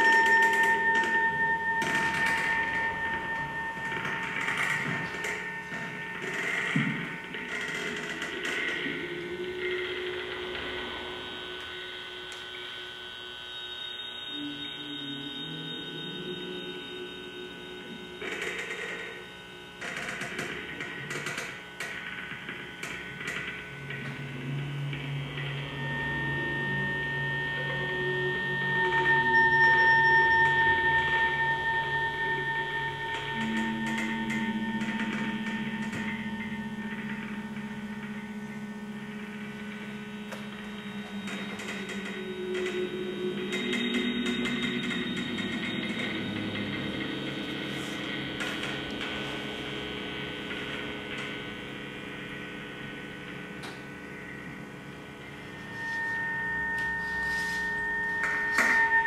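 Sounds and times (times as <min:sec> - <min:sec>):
high whistling tone: 0:00.0 - 0:06.3, 0:13.5 - 0:18.2, 0:25.5 - 0:49.6, 0:55.3 - 0:59.0
electronic drone music: 0:00.0 - 0:59.0.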